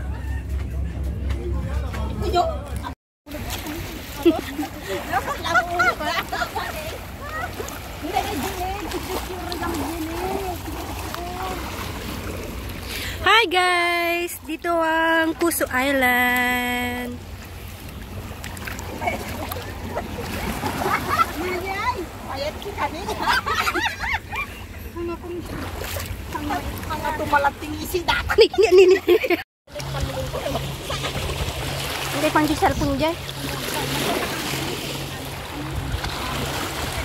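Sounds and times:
sea water lapping at shore: 2.8 - 37.0
woman laughing: 4.2 - 7.8, 22.9 - 24.6, 28.0 - 29.4
woman speaking greeting: 13.2 - 17.2
waves washing over rocks: 29.8 - 37.0
wind rumble on microphone: 29.8 - 37.0.

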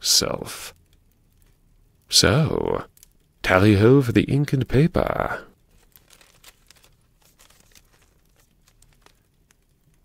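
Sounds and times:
faint crackles: 0.0 - 10.0.

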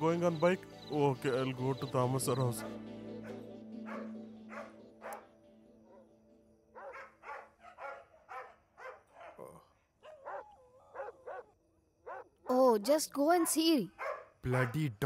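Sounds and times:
dogs barking: 2.4 - 6.1, 6.7 - 12.5, 13.3 - 15.0.

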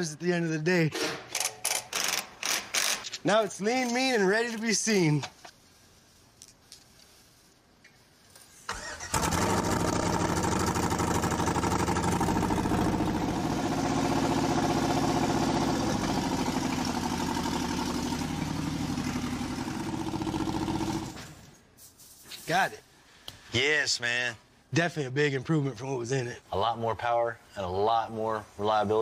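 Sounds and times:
car engine cranking and idling: 8.7 - 21.2.

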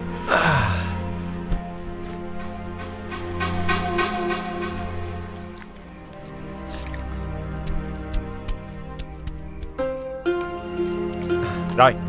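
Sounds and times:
soft background music: 0.0 - 12.0
water splash: 3.4 - 8.9
water dripping: 3.8 - 11.8.

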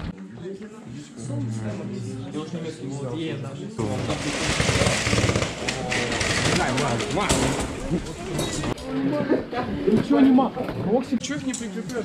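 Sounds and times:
crowd of people talking: 0.0 - 12.0
dense rapid clattering: 3.8 - 8.1.

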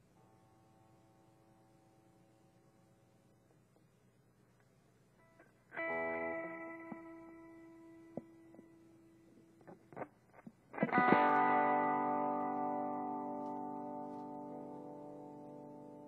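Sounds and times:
electric guitar chords ringing: 5.2 - 10.1, 10.7 - 16.0
guitar string plucks and clicks: 9.6 - 14.7.

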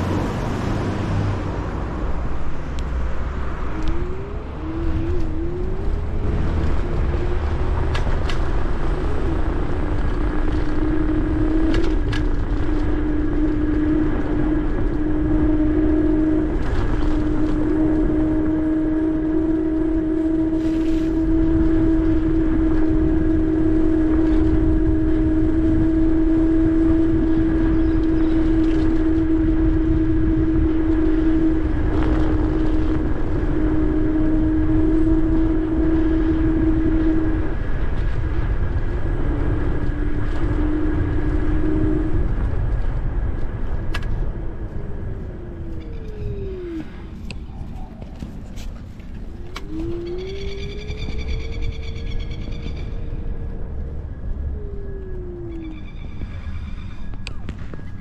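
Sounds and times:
electric motor whine: 0.0 - 52.2
wind: 0.0 - 58.0.

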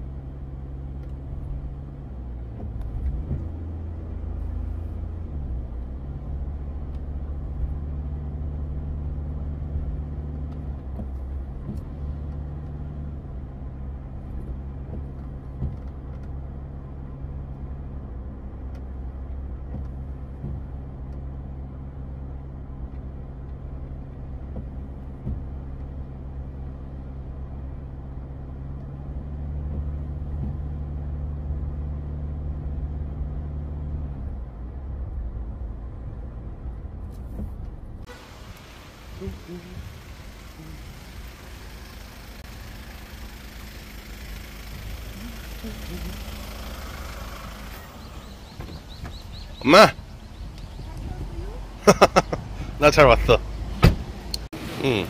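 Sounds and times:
car engine and road noise: 0.0 - 55.0.

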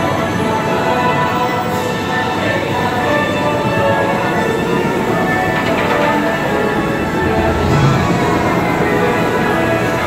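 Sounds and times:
ride soundtrack music: 0.3 - 10.0.

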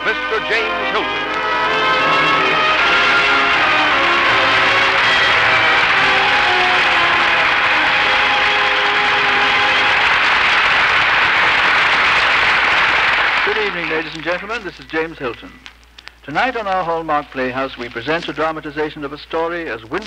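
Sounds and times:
host speaking: 0.0 - 1.2, 13.4 - 15.6
theme music: 0.0 - 12.2
audience applauding: 0.0 - 15.5.

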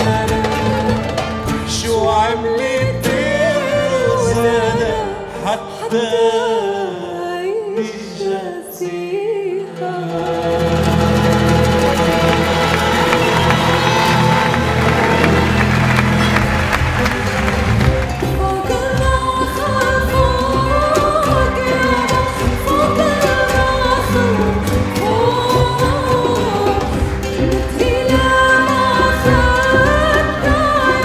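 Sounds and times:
ouds and strings playing: 9.7 - 31.0.

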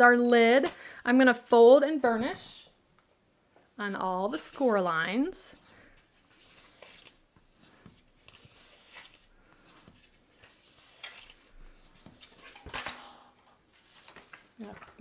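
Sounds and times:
paper rubbing and sliding: 4.3 - 12.5.

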